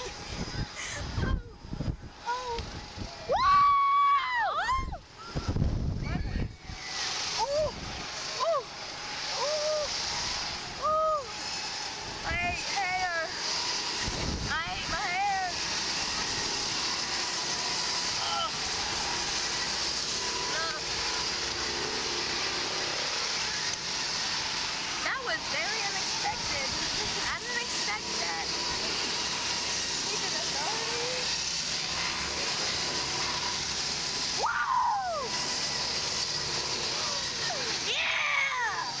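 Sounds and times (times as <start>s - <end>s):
wind rushing over microphone: 0.0s - 3.8s, 4.7s - 6.8s, 7.5s - 8.2s, 14.0s - 15.5s
person crying out: 3.3s - 5.0s, 7.4s - 7.8s, 8.4s - 8.7s, 9.3s - 10.0s, 10.8s - 11.3s, 18.2s - 18.6s, 34.4s - 35.3s.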